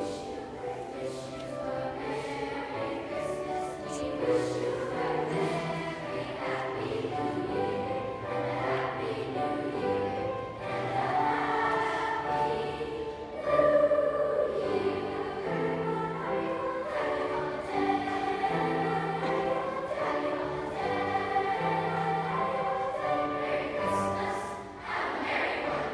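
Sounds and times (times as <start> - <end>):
choir singing sustained notes: 0.0 - 25.9.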